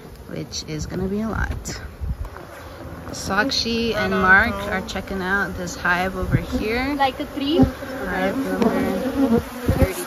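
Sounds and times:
honey bees buzzing: 0.0 - 10.0
dull low bumps: 0.8 - 10.0.

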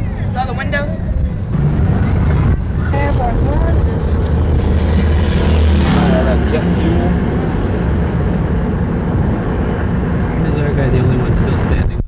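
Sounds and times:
freeway road noise: 0.0 - 12.0.

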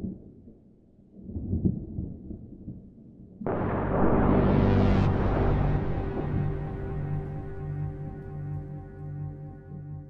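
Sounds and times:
low soundtrack rumble: 3.5 - 10.0.

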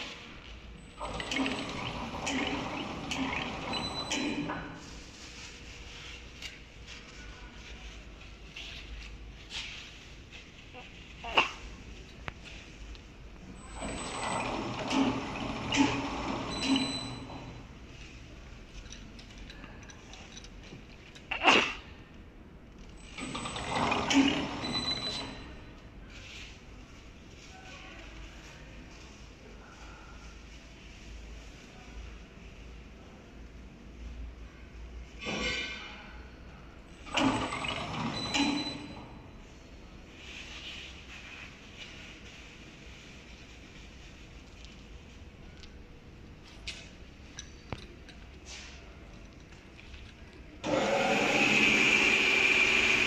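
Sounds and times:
metal machine parts clattering: 18.7 - 21.3, 46.4 - 50.5.

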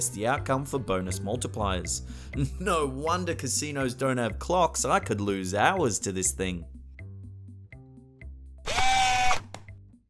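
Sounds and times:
background music with bass: 0.0 - 10.0.

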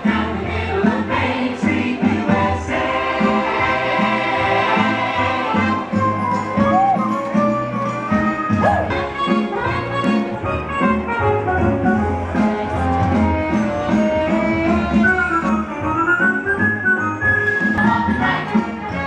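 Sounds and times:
upbeat band music: 0.0 - 19.0.

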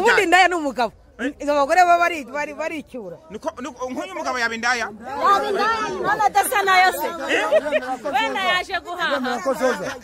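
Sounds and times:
people talking: 1.5 - 10.0.

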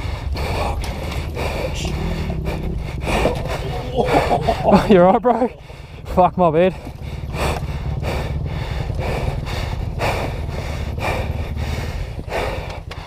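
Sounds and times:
heavy panting breaths: 0.0 - 13.0
motorcycle engine idling: 0.0 - 13.0.

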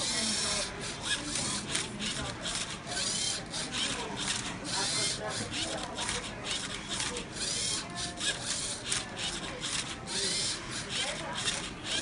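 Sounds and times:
robot motors whirring: 0.0 - 12.0.

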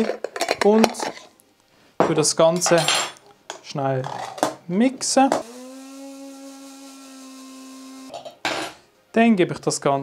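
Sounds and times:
electric spice grinder humming: 5.4 - 8.1.

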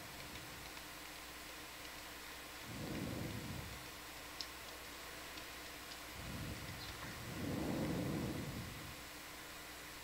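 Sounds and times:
faint steady hiss: 0.0 - 10.0
low muffled rumble: 2.6 - 4.0, 6.0 - 9.1.

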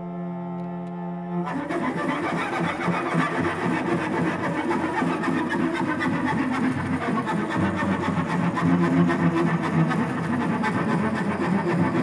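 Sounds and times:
cello bowed with scratchy strokes: 0.0 - 12.0.

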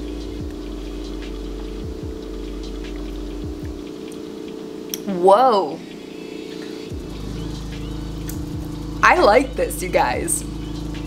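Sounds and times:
deep low hum: 0.0 - 4.3, 6.9 - 11.0.

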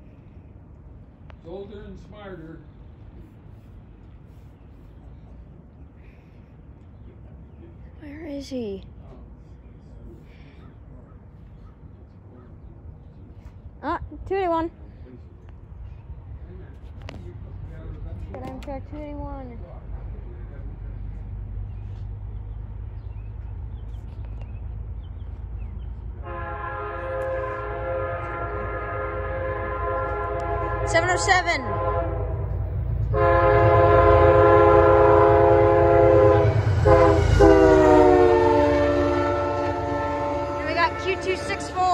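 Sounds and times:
low outdoor rumble: 0.0 - 41.9
locomotive air horn blast: 26.2 - 41.9
low rumble: 27.2 - 41.9.

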